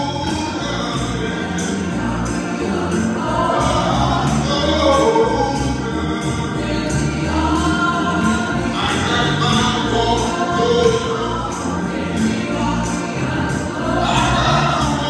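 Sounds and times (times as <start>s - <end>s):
instrumental accompaniment: 0.0s - 15.0s
jingling percussion: 0.0s - 15.0s
women singing gospel: 0.0s - 15.0s.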